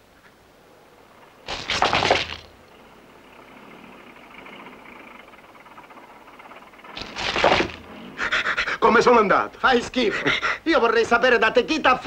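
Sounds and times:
man laughing: 9.9s - 10.6s.

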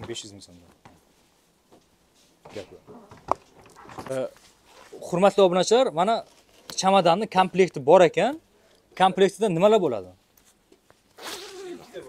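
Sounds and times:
suitcase zipper rasping: 11.1s - 12.0s.

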